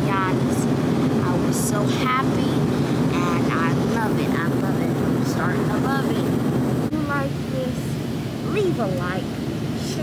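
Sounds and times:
airliner cabin drone: 0.0s - 10.0s
child making wordless sounds: 6.9s - 9.2s.

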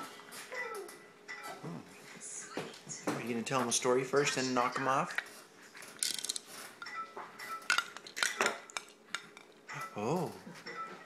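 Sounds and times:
plastic toys clacking: 5.9s - 6.4s.

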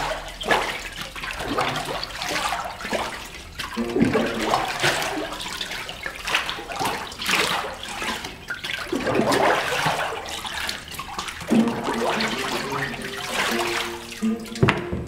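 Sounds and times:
water and pulp sloshing: 0.0s - 15.0s.

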